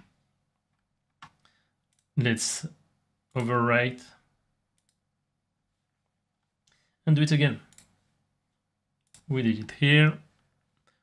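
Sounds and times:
faint mouse clicks: 4.7s - 5.0s, 7.6s - 8.0s.

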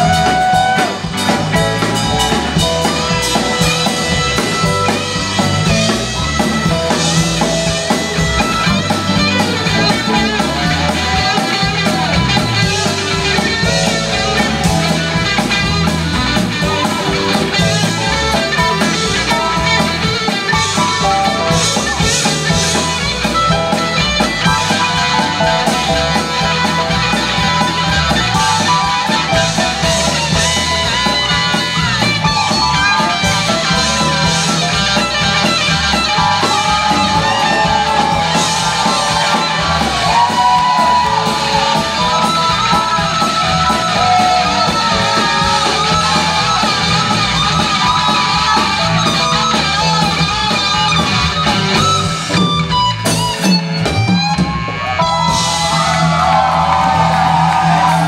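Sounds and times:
bass: 0.0s - 58.0s
drums: 0.0s - 58.0s
electric guitar: 0.0s - 58.0s
keyboard: 0.0s - 58.0s.

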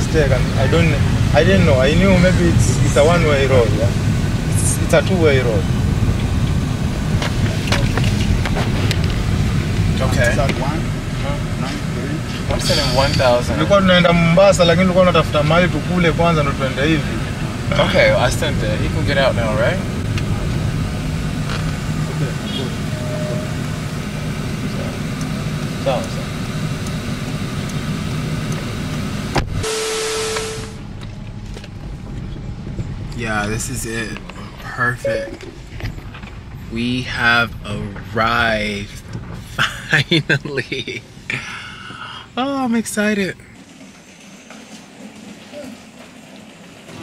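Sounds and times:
car cabin rumble: 0.0s - 42.5s.

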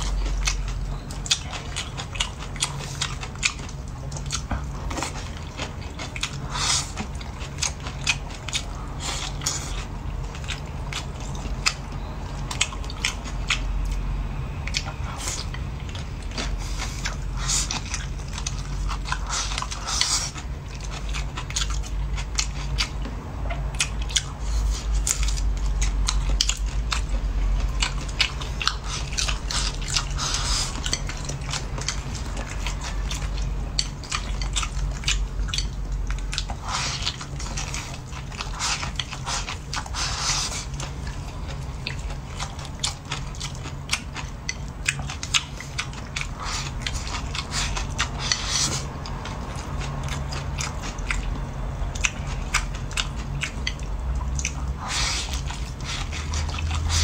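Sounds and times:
chewing and crunching food: 0.0s - 57.0s
steady low hum: 0.0s - 57.0s.

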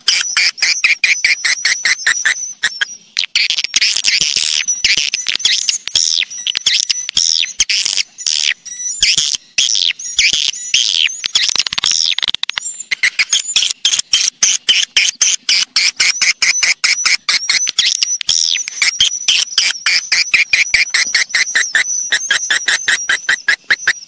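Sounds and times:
swiftlets twittering and clicking: 0.0s - 24.0s.

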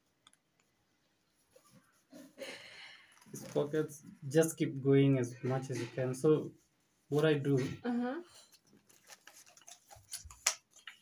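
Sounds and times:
paper crinkling and folding: 3.0s - 4.0s, 8.4s - 11.0s.

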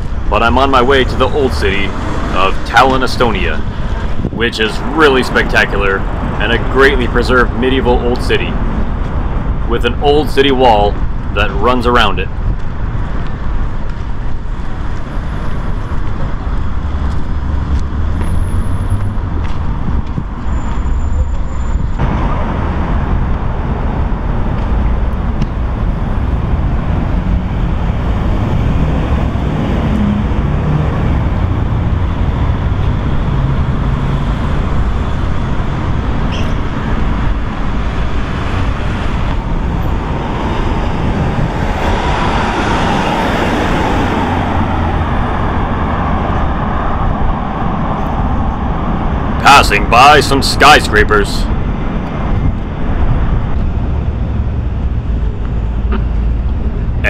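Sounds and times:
passing vehicle whine: 0.0s - 57.0s
rumble of traffic: 0.0s - 57.0s.

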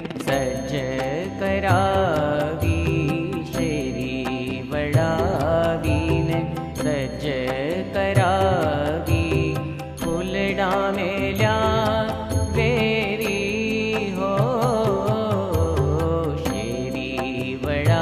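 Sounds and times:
even percussive beat: 0.0s - 18.0s
person singing a chant: 0.0s - 18.0s.

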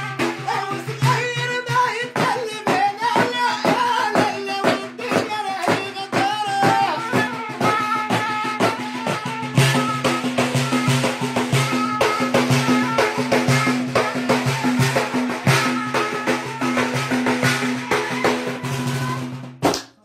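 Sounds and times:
frame drum beating: 0.0s - 19.7s.

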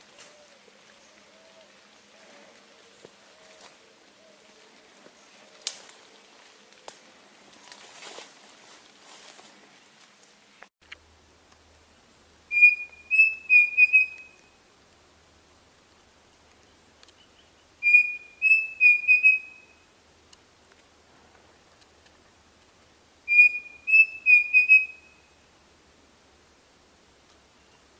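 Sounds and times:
cuckoo whistled song: 12.5s - 14.6s, 17.8s - 19.8s, 23.3s - 25.3s.

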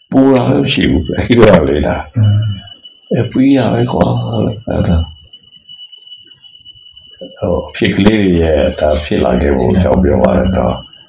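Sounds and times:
high-pitched whine: 0.0s - 11.0s.

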